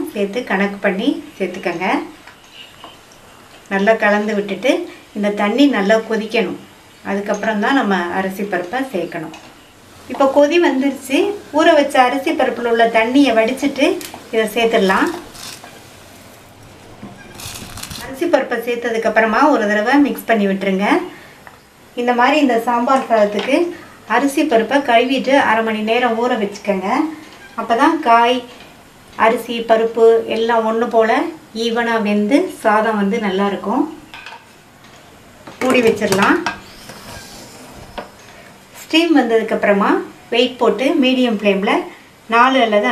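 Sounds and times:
woman's voice: 0.0s - 2.2s, 3.7s - 9.4s, 10.1s - 15.3s, 18.0s - 21.2s, 22.0s - 28.5s, 29.2s - 34.0s, 35.6s - 36.6s, 38.8s - 42.9s
ladle stirring and scraping pot: 35.6s - 38.4s.

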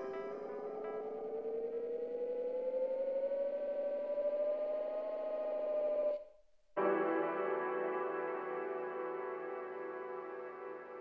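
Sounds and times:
synthesizer tone gliding upward: 0.0s - 6.2s.

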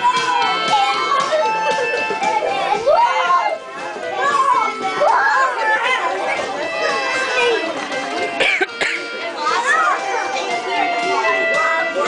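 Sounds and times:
children calling and chattering: 0.0s - 12.0s
faint music: 0.0s - 12.0s.

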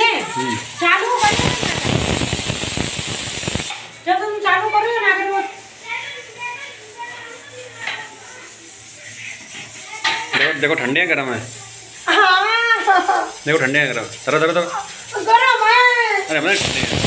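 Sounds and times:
harsh rushing hiss: 0.0s - 4.0s, 4.7s - 17.0s.

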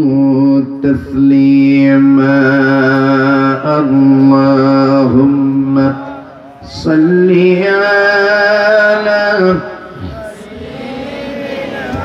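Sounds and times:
man chanting melodic recitation: 0.0s - 10.6s.

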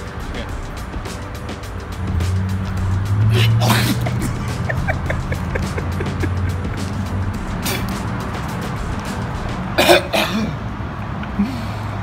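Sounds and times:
background music: 0.0s - 11.2s
man coughing and retching: 3.4s - 6.3s, 9.8s - 10.6s.

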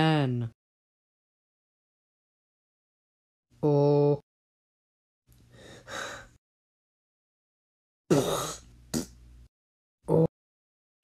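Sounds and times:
person gasping: 5.6s - 6.4s.

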